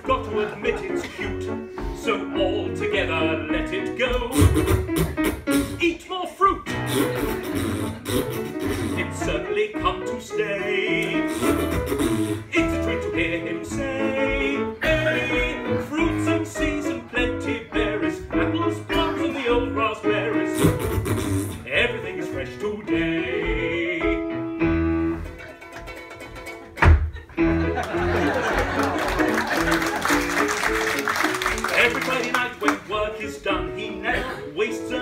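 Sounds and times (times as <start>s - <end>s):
piano accompaniment: 0.0s - 35.0s
ukulele: 23.3s - 34.7s.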